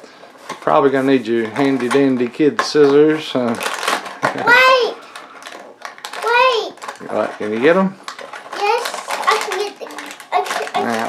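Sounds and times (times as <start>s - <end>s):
young child talking: 4.4s - 5.0s, 6.2s - 6.8s, 8.6s - 11.0s.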